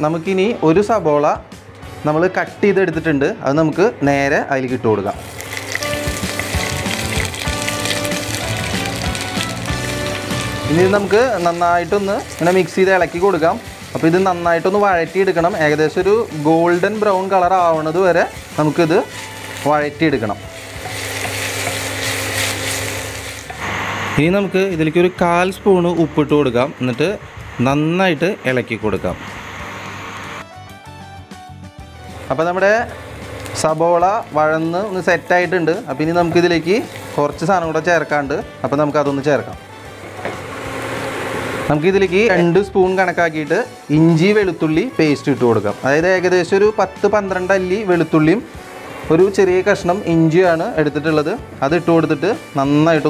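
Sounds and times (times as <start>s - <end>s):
background music: 0.0s - 53.0s
onions sizzling in oil: 5.2s - 27.8s, 32.1s - 39.1s, 39.8s - 53.0s.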